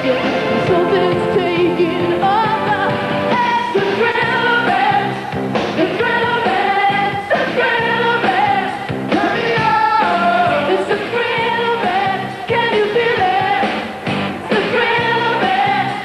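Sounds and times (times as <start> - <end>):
pop-rock band playing: 0.0 - 16.0.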